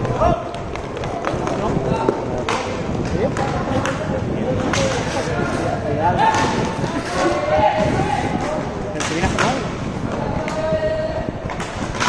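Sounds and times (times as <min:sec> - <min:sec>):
sticks and skates clicking: 0:00.0 - 0:07.5, 0:08.4 - 0:10.6.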